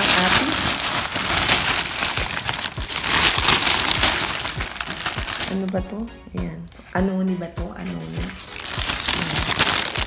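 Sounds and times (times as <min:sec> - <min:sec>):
paper bag crinkling: 0:00.0 - 0:05.8, 0:08.1 - 0:10.0.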